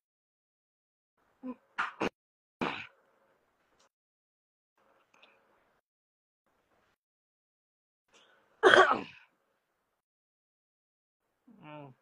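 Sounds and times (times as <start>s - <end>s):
person sneezing: 8.6s - 9.2s.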